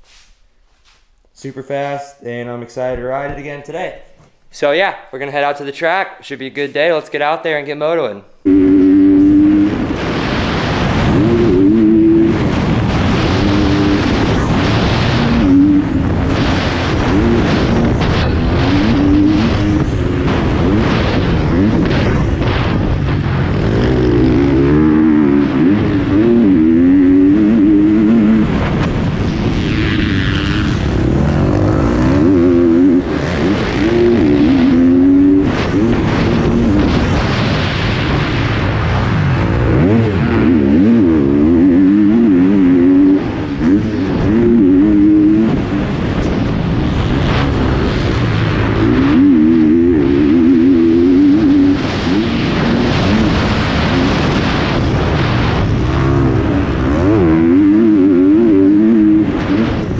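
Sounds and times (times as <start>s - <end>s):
dirt bike engine revving: 8.4s - 59.9s.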